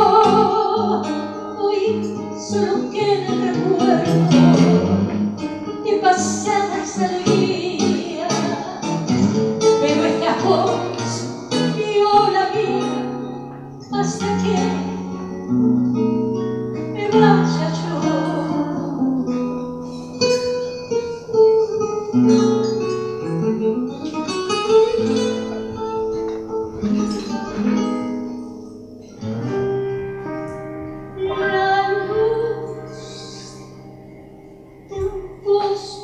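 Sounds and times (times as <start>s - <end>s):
acoustic guitar playing a tango: 0.0s - 36.0s.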